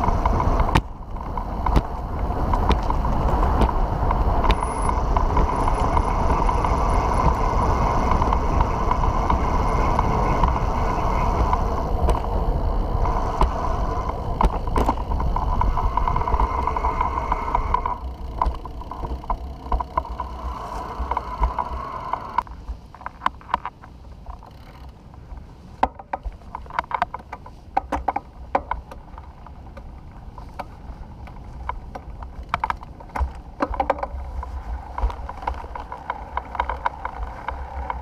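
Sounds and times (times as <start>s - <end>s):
sharp clicks and rattles: 0.0s - 25.2s, 25.8s - 38.0s
rushing wind and road noise: 0.0s - 38.0s.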